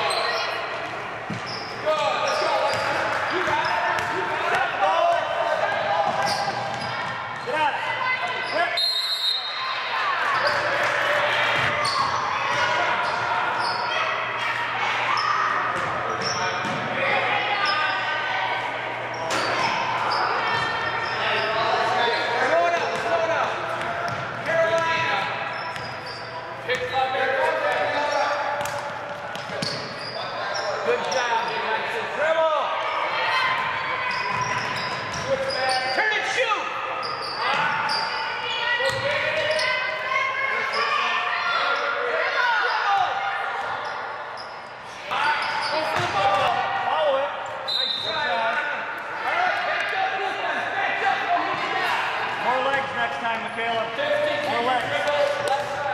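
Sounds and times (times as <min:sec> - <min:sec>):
voices echoing in hall: 0:00.0 - 0:55.9.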